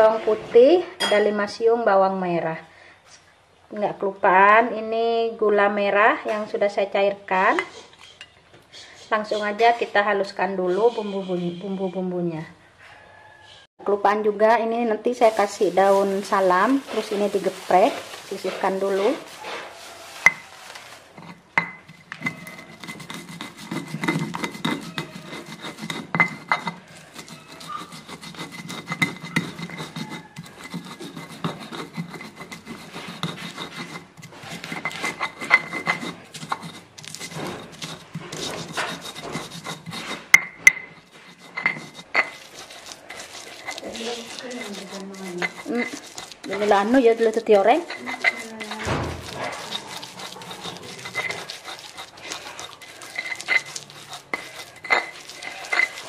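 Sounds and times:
stone pestle grinding in mortar: 15.2 - 56.0.

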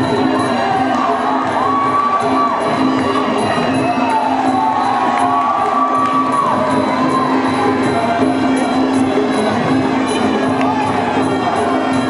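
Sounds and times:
crowd cheering and shouting: 0.0 - 12.0
steady musical accompaniment: 0.0 - 12.0.

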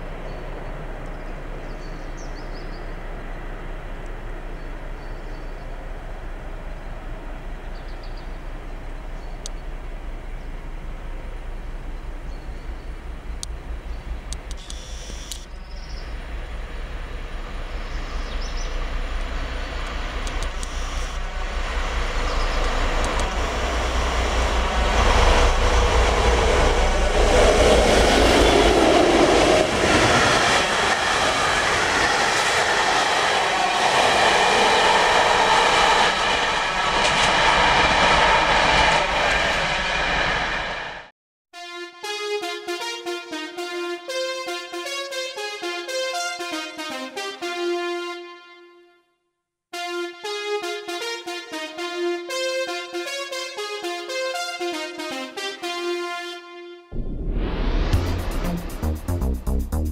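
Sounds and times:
diesel locomotive engine rumble: 0.0 - 41.1, 57.0 - 59.9
train wheels on rails: 13.2 - 41.1.

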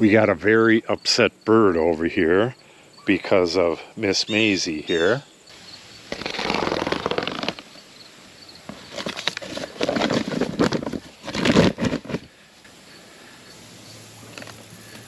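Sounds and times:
paper sack rustling and crinkling: 6.1 - 7.7, 8.6 - 12.4.

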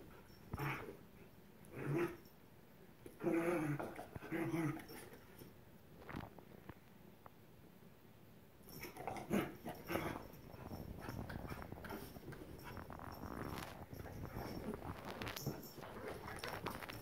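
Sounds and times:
dogs play-fighting vocalizing: 8.8 - 17.0
dogs scuffling: 8.8 - 17.0.

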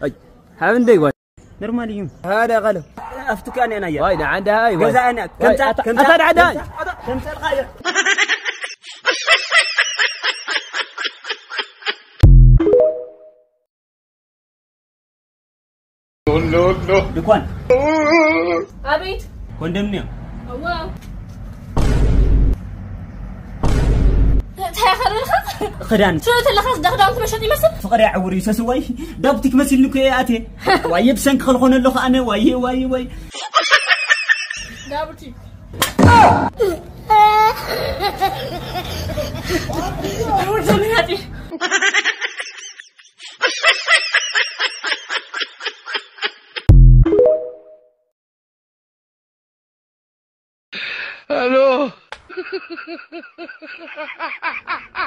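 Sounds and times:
man speaking: 0.6 - 7.7
person laughing: 7.8 - 12.2, 36.6 - 40.6, 41.5 - 46.7, 51.4 - 55.0.

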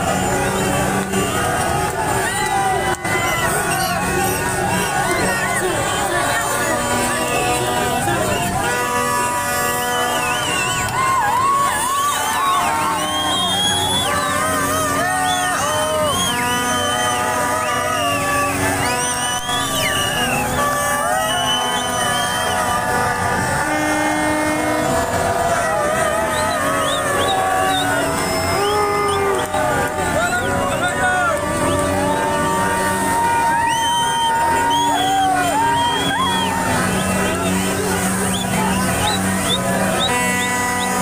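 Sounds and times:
car horns honking: 0.0 - 41.0
crowd shouting and chanting: 0.0 - 41.0.

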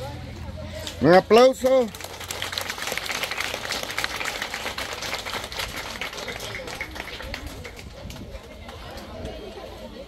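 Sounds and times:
crowd applauding: 1.6 - 9.1.

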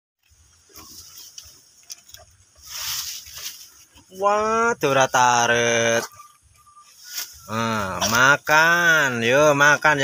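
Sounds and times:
goat crunching leaves: 0.2 - 4.4, 5.3 - 8.5.

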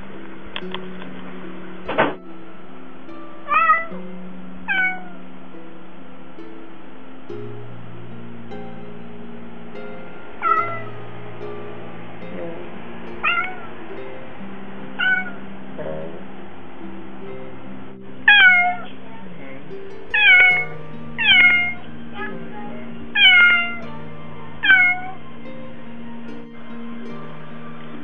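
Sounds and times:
background music: 0.0 - 28.0
cat meowing: 3.5 - 3.9, 4.7 - 5.2, 10.4 - 10.9, 13.2 - 13.7, 15.0 - 15.4, 18.3 - 18.9, 20.1 - 22.3, 23.1 - 23.8, 24.6 - 25.2.

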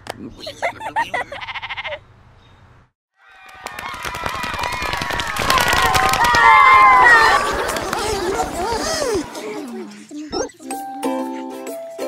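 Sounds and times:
child laughing: 0.4 - 2.0, 6.9 - 10.6
cartoon sheep bleating: 1.3 - 2.0.

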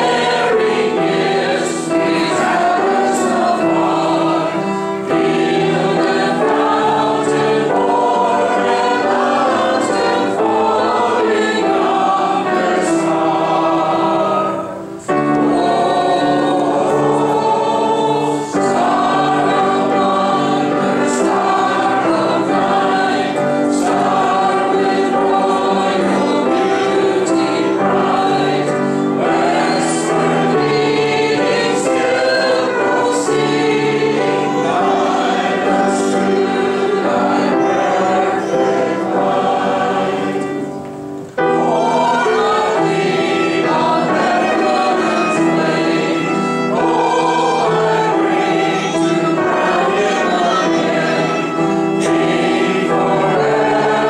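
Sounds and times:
congregation singing a hymn: 0.0 - 54.0
piano: 0.0 - 54.0
violin: 0.0 - 54.0.

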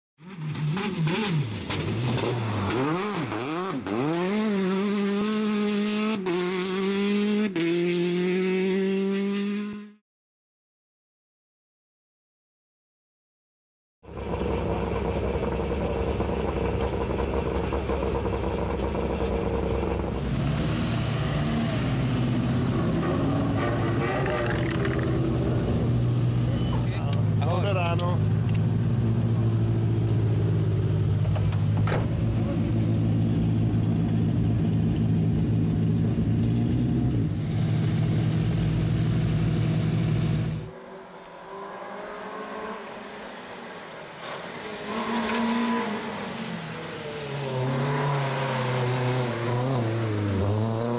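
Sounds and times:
voices: 26.4 - 28.6.

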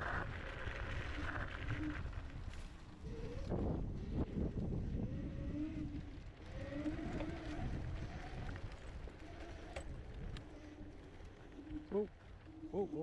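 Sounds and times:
wind buffeting microphone: 0.0 - 12.0
electric scooter riding over grass: 0.0 - 13.0.

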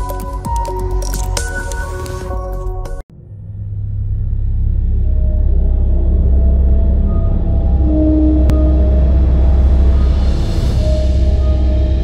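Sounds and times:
deep rumble with low tones: 3.1 - 12.0.

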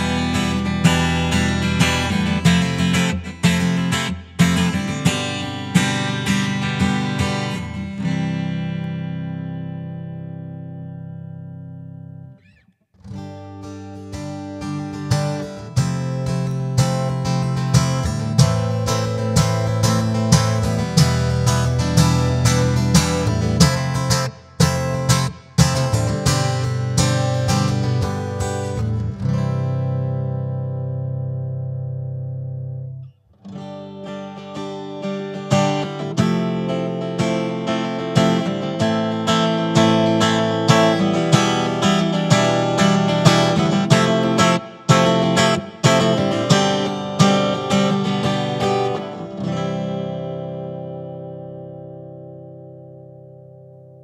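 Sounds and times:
acoustic guitar chords strummed: 0.0 - 12.4, 13.0 - 54.0.

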